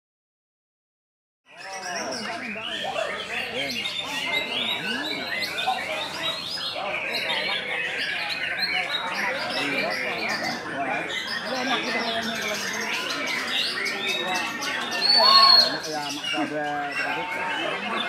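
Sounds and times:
people's voices: 1.5 - 18.0
songbirds chirping: 1.5 - 18.0.

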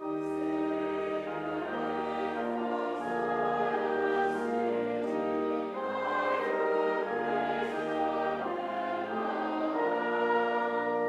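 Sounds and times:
congregation and choir singing hymn: 0.0 - 11.0.

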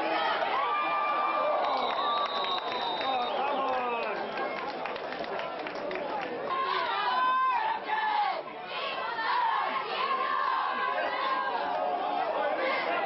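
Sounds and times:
crowd talking and calling out: 0.0 - 13.0.

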